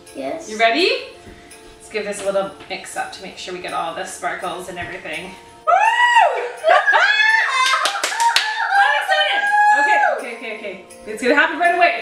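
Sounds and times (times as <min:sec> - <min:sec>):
woman and child squealing excitedly: 0:05.7 - 0:10.2
hand claps: 0:07.5 - 0:09.0.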